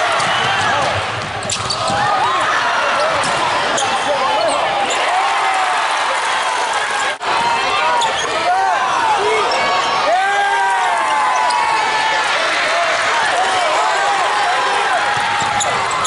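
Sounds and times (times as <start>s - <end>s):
shouting and crowd voices: 0.0s - 16.0s
sneakers squeaking: 0.2s - 5.1s, 7.8s - 8.5s, 15.0s - 16.0s.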